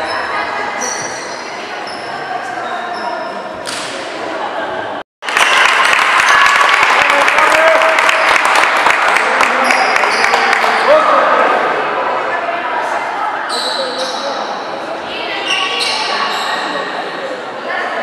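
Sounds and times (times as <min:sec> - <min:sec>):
sneakers squeaking: 0:00.0 - 0:04.1, 0:13.5 - 0:14.5, 0:15.3 - 0:17.0
echoing crowd voices: 0:00.0 - 0:18.0.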